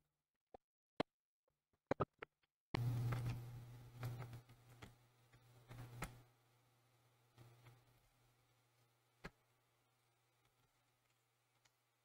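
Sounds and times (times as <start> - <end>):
low steady hum: 2.8 - 12.0.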